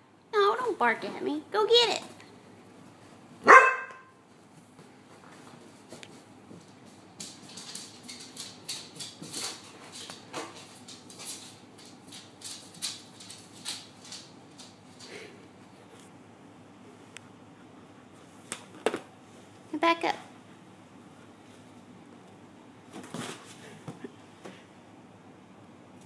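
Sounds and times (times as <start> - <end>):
dog barking: 3.4 - 4.1
soft rustling and scuffling: 4.2 - 16.2.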